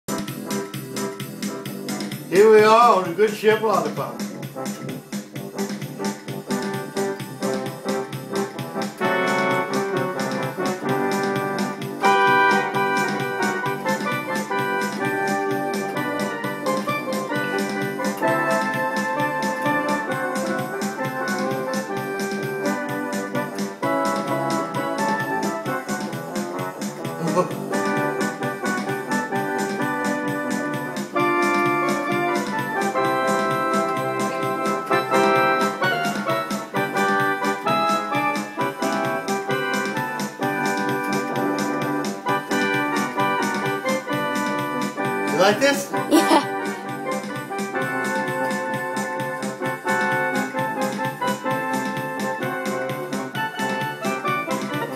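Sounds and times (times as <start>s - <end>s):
electronic keyboard tune: 0.0s - 54.9s.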